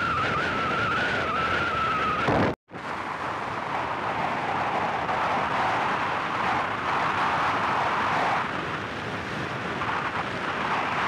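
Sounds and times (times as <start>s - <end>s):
high whine: 0.0s - 5.8s
road and wind noise: 0.0s - 11.0s.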